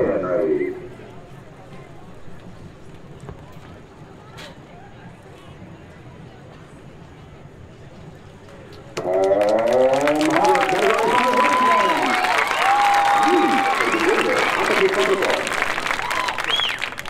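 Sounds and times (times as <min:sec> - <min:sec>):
crowd cheering and clapping: 0:09.0 - 0:17.0.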